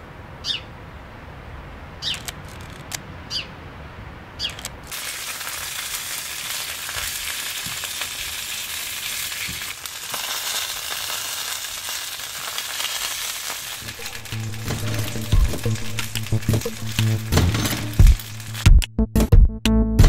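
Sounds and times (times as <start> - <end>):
sausages sizzling in a frying pan: 4.9 - 18.6.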